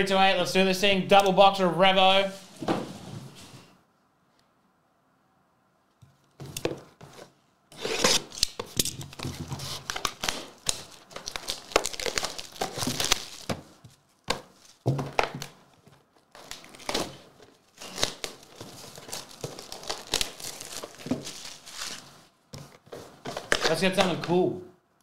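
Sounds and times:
plastic shrink wrap tearing: 7.8s - 13.5s, 16.3s - 22.1s
card packs crinkling: 7.8s - 24.4s.

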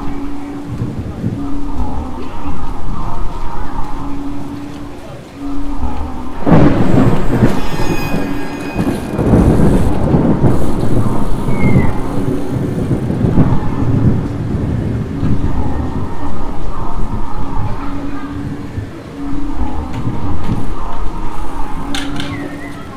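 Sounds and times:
steady heavy rain: 0.0s - 22.9s
thunder rolling and rumbling: 0.0s - 22.9s.

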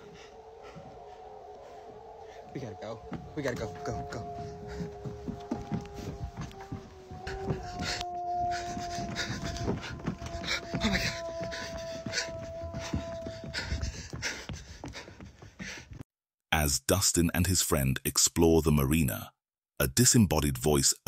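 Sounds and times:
person panting hard: 0.0s - 2.5s, 7.2s - 16.0s
two-note droning tone: 0.0s - 13.1s
footsteps thumping and rustling: 3.0s - 16.1s.

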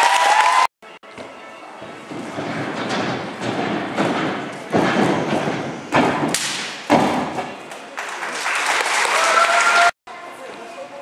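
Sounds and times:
thuds on tumbling track: 2.0s - 7.6s.

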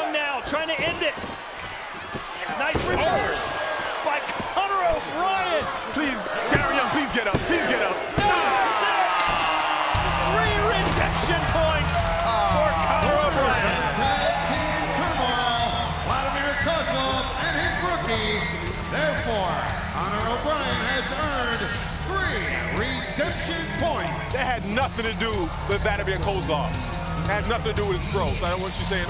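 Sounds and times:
crowd shouting: 0.0s - 19.4s
music: 9.6s - 29.0s.

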